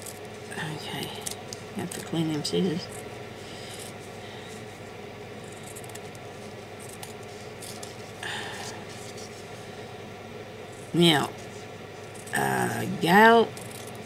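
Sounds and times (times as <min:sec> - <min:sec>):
steady background hum: 0:00.0 - 0:14.0.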